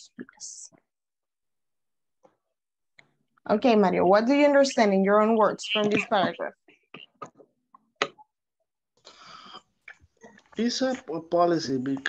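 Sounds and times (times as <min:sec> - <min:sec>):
breathy sound: 0:09.0 - 0:09.8.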